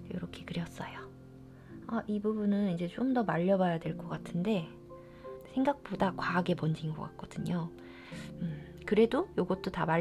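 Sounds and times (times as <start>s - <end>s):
quiet music with held tones: 0.0s - 10.0s.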